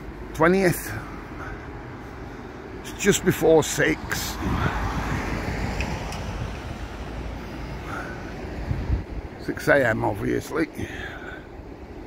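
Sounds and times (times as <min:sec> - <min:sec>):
low rumble of street noise: 0:00.0 - 0:12.0.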